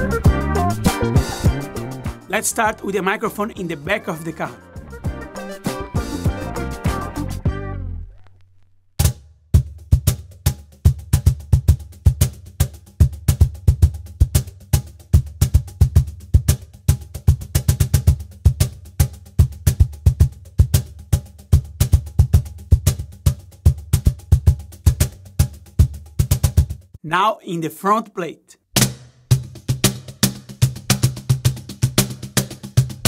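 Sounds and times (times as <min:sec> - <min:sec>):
cajon bass tones and slaps: 0:08.2 - 0:27.0, 0:28.8 - 0:33.0.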